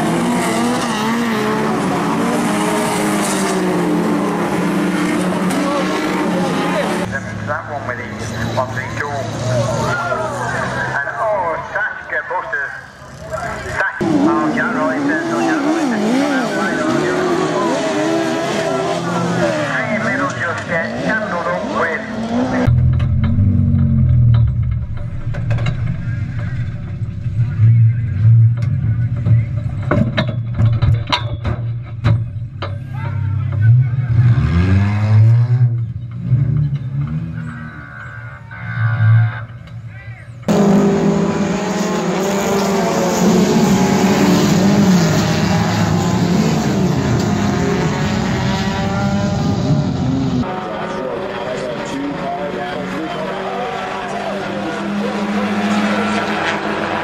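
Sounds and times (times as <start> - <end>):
race car engines: 0.0 - 57.0.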